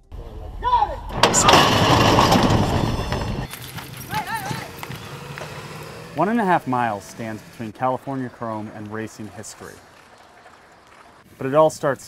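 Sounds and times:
high shout: 0.6 - 1.6, 4.0 - 5.2
starting gate doors clanging open: 1.1 - 6.2
hoofbeats on dirt: 3.0 - 11.6.

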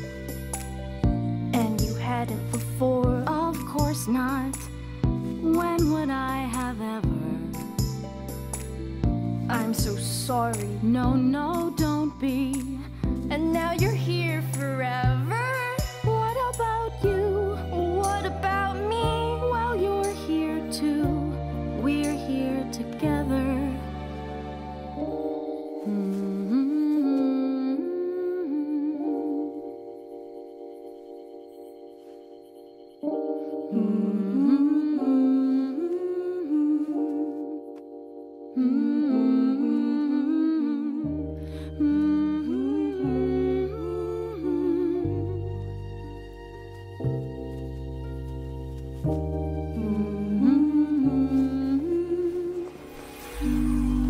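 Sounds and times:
soft music backing: 0.0 - 54.0
soft sustained chords: 13.6 - 54.0
voice humming a slow melody: 25.8 - 29.9, 33.7 - 37.8, 38.5 - 45.6, 49.7 - 52.8, 53.4 - 54.0.

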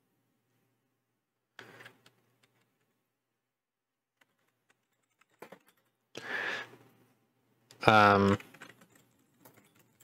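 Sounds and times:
computer keyboard typing: 4.2 - 6.0, 8.0 - 10.0.

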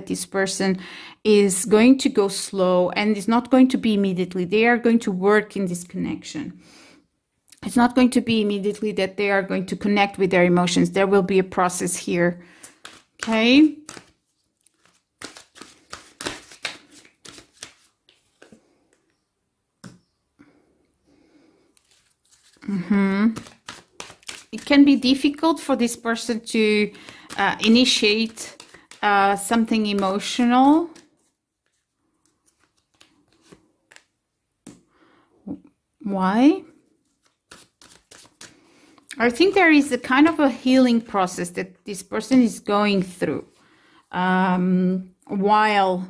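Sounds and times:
cards being shuffled by hand: 12.5 - 19.1, 21.7 - 34.8, 37.0 - 41.5.

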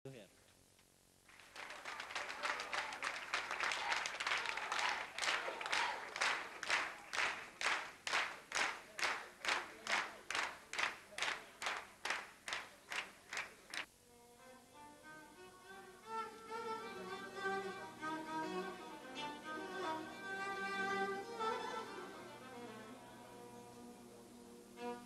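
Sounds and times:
audience applause: 1.2 - 13.9
rhythmic clapping in unison: 1.2 - 13.9.

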